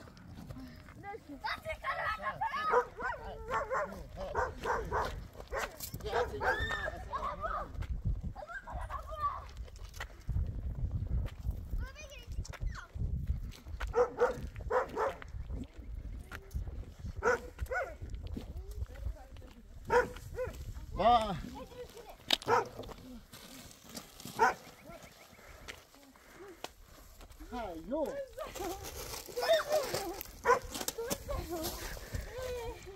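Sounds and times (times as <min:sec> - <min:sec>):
people's voices: 0:00.0 - 0:09.6
dog barking: 0:02.6 - 0:06.7, 0:13.9 - 0:15.2, 0:17.2 - 0:18.0, 0:19.9 - 0:20.6, 0:22.5 - 0:22.8, 0:24.4 - 0:24.7, 0:30.4 - 0:30.7.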